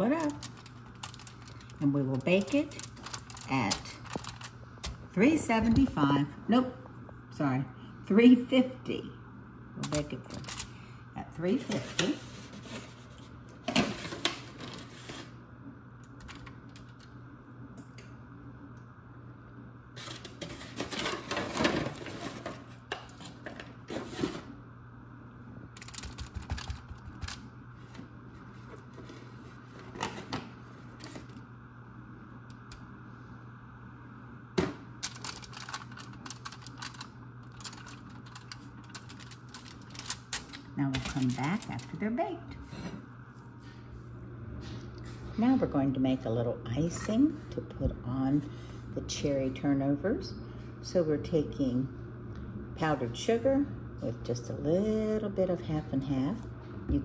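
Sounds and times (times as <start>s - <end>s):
aluminium foil crinkling: 0.0s - 5.0s, 9.9s - 10.7s, 25.8s - 27.5s, 35.0s - 42.1s
steady low hum: 0.0s - 57.0s.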